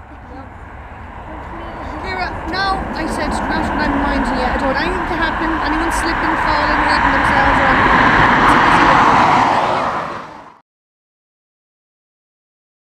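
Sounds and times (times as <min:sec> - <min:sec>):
jet engine roar: 0:00.0 - 0:10.6.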